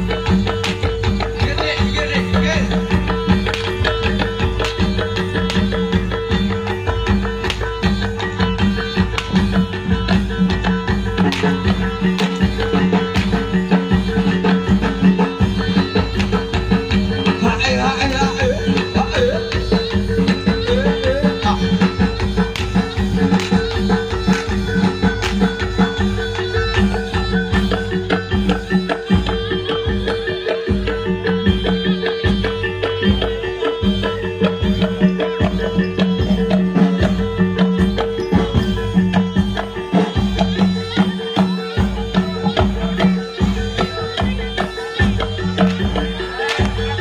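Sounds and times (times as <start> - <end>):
rapid hand-drum strokes: 0.0 - 47.0.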